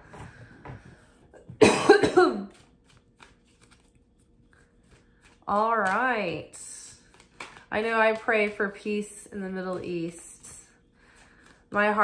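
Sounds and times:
woman coughing: 0:01.4 - 0:02.6.

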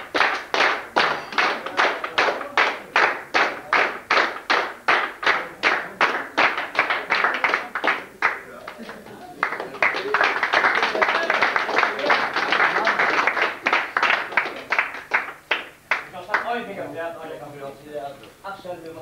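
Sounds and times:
audience clapping in unison: 0:00.0 - 0:16.7.

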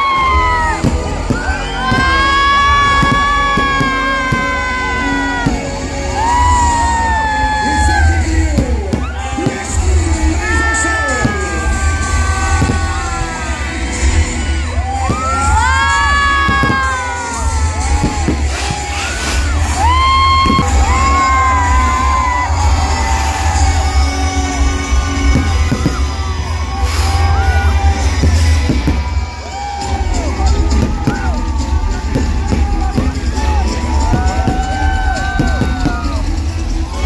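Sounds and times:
crowd whooping and cheering: 0:00.0 - 0:37.0
heavy bass music over sound system: 0:00.0 - 0:37.0
fireworks bangs: 0:00.1 - 0:06.8, 0:07.7 - 0:37.0.

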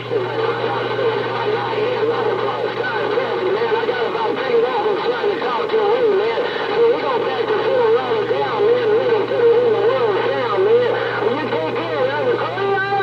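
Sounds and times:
garbled radio voices: 0:00.0 - 0:13.0
radio static: 0:00.0 - 0:13.0
steady hum: 0:00.0 - 0:13.0.

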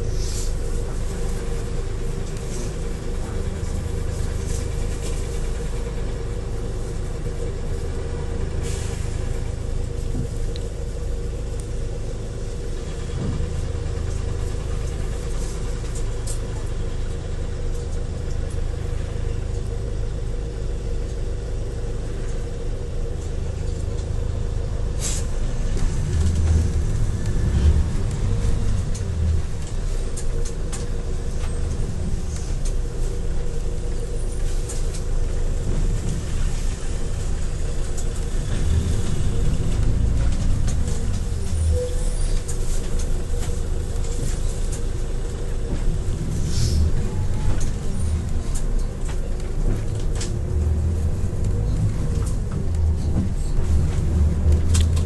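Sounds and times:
bus engine idling: 0:00.0 - 0:55.0.

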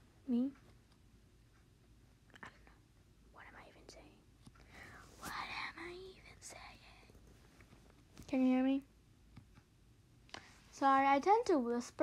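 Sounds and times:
soft whispering: 0:02.3 - 0:07.3.

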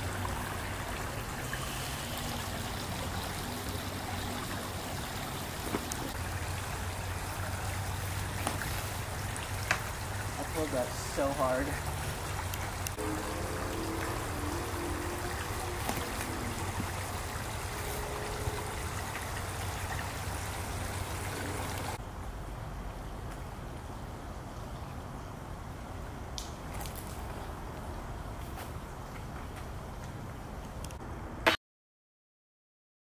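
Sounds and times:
water-like hiss: 0:00.0 - 0:04.0.

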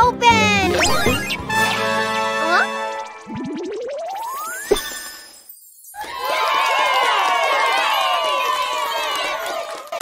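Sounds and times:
children cheering and shouting: 0:06.0 - 0:10.0.

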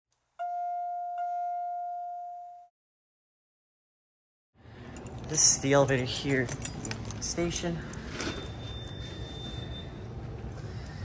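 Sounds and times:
elevator chime dings: 0:00.4 - 0:02.7, 0:08.0 - 0:10.3.

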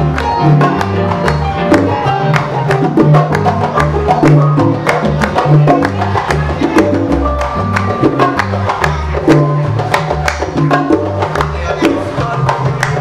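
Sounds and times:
bass line: 0:00.0 - 0:13.0
salsa band playing: 0:00.0 - 0:13.0.

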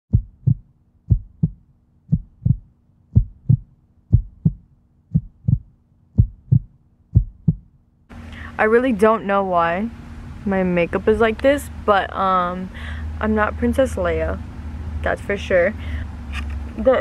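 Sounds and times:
heartbeat double thumps: 0:00.1 - 0:07.8
faint low hum: 0:00.1 - 0:17.0.

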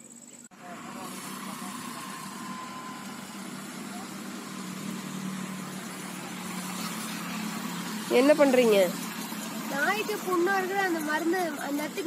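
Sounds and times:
engine-like hum: 0:00.0 - 0:12.0.

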